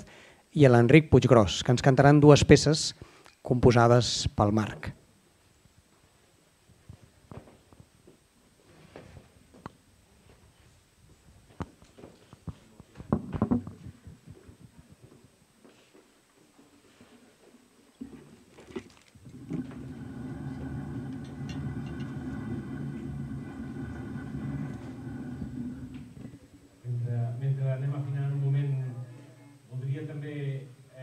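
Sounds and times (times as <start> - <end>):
low hum with held tones: 0.0 - 31.0
furniture knocking and scraping: 13.0 - 14.5, 19.3 - 26.4.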